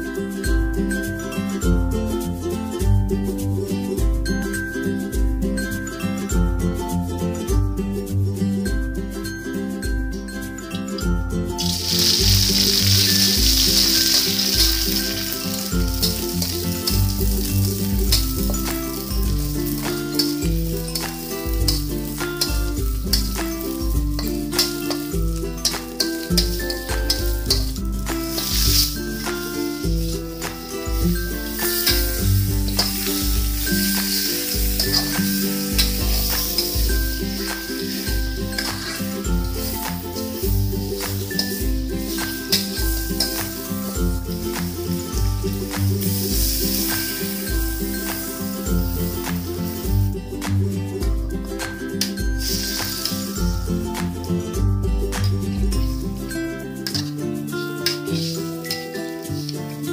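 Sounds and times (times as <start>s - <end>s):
metal spatula stirring in wok: 11.6s - 44.0s, 57.8s - 59.5s
paste sizzling in hot oil: 11.6s - 50.2s, 52.0s - 53.6s, 57.8s - 59.6s.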